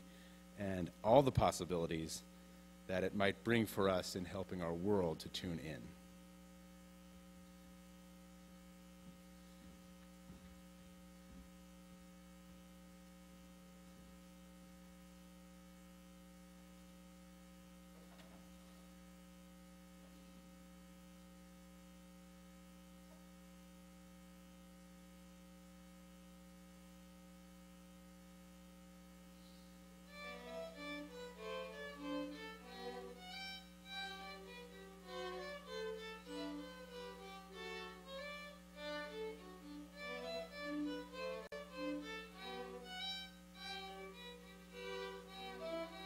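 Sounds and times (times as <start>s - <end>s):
electrical mains hum: 0.0s - 46.0s.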